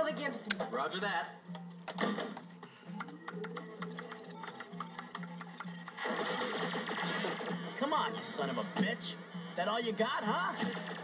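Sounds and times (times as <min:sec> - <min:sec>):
pulsing electronic film score: 0:01.4 - 0:11.0
rapid keyboard typing: 0:02.7 - 0:06.3.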